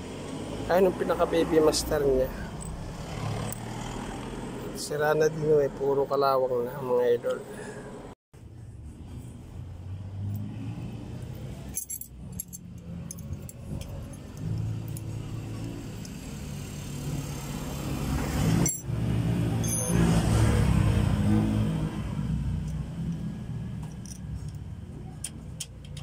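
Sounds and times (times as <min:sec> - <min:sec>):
wrench clinking on metal: 0:11.7 - 0:15.2, 0:18.6 - 0:18.8, 0:22.6 - 0:26.0.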